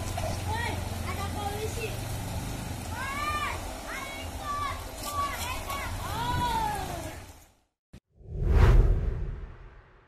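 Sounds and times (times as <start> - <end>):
low rumble: 8.2 - 10.0.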